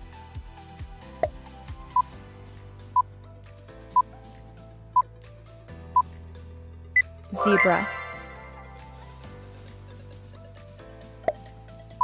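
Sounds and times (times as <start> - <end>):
soft background music: 0.0 - 12.0
countdown timer beeps: 7.4 - 9.0.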